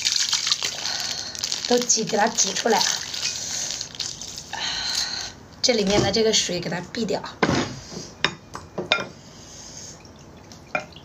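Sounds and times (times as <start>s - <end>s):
plastic bag crinkling: 0.0s - 5.0s.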